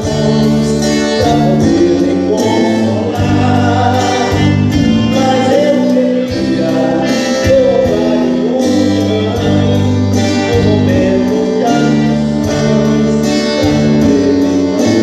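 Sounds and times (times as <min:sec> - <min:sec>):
gospel music on guitars: 0:00.0 - 0:15.0
low bass line: 0:00.0 - 0:15.0
person singing: 0:00.0 - 0:15.0.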